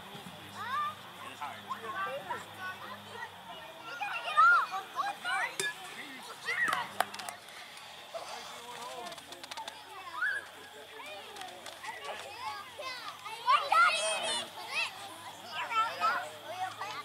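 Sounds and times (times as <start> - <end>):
children calling and chattering: 0.0 - 17.0.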